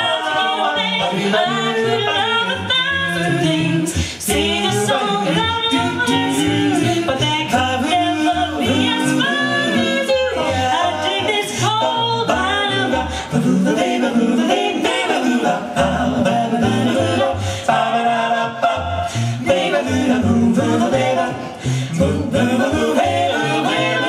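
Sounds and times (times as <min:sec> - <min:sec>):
a cappella group singing in harmony: 0:00.0 - 0:24.0
bass voice singing: 0:01.2 - 0:24.0.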